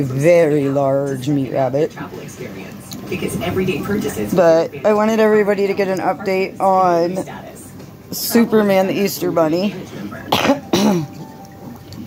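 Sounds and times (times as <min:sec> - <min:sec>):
woman clearing throat coughing: 0:10.3 - 0:11.3.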